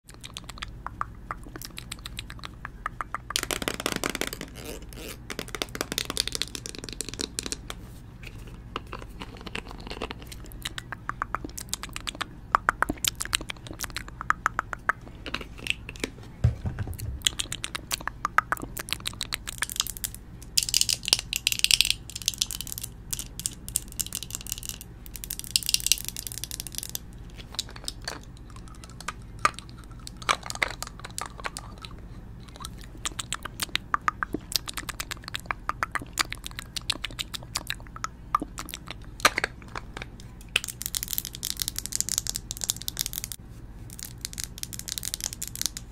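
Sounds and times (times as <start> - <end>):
plastic tube clicking and crackling: 0.1 - 7.8, 17.2 - 45.9.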